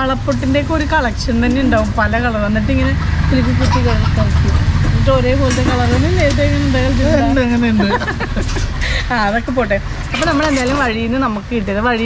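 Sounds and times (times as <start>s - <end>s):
continuous low rumble: 0.0s - 12.0s
woman talking: 0.0s - 12.0s.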